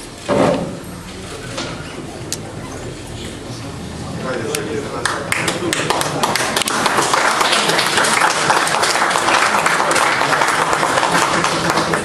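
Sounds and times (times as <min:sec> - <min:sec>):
crowd chatter: 0:00.0 - 0:12.0
crowd applauding: 0:04.9 - 0:12.0.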